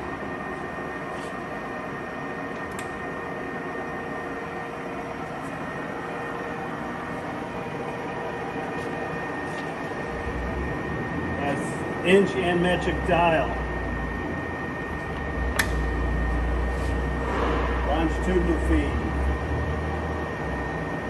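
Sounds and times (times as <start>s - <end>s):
lathe geared hum: 0.0s - 21.0s
thin high whine: 3.6s - 21.0s.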